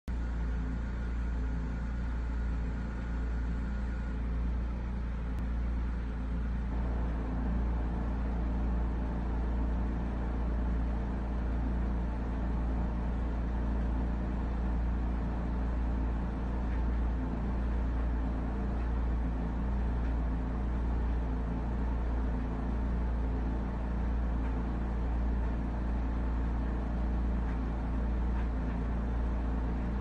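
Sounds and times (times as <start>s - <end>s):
faint hum: 0.1s - 30.0s
low rumble: 0.2s - 30.0s.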